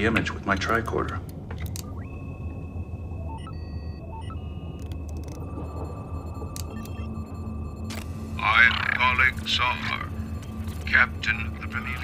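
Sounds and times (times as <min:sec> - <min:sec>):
clicks: 0:00.6 - 0:02.0, 0:04.7 - 0:05.6, 0:06.4 - 0:07.1
high electronic tone: 0:01.9 - 0:12.0
short beeps: 0:02.0 - 0:08.4.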